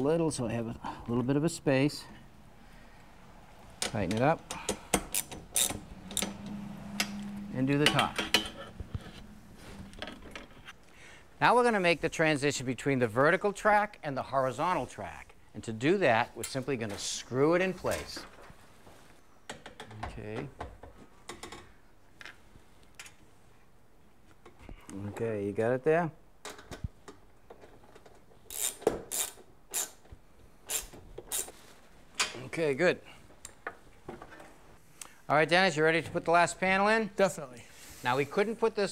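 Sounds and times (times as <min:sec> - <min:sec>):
ratchet wrench clicking: 0:04.6 - 0:06.4, 0:28.5 - 0:30.0, 0:30.7 - 0:31.5.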